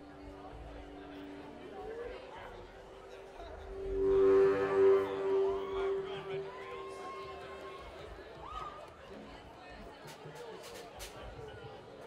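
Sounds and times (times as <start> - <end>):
amplified instrument steady note: 0.0 - 8.4
short sliding notes: 3.4 - 8.0.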